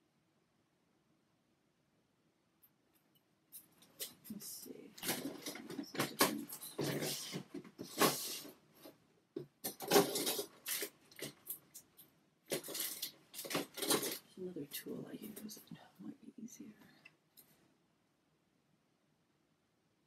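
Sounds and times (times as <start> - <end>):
rummaging through small objects: 3.6 - 8.9, 9.6 - 14.3
sharp clicks and clatters: 9.4 - 14.3.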